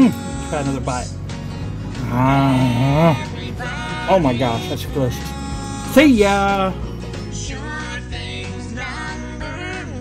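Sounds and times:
background music: 0.0 - 10.0
short vocal sound: 1.9 - 3.9
person humming mmm: 2.0 - 3.4.

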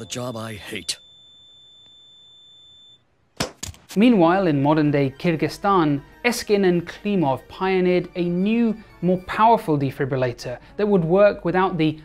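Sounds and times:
cardiac monitor flatline tone: 0.0 - 3.1.

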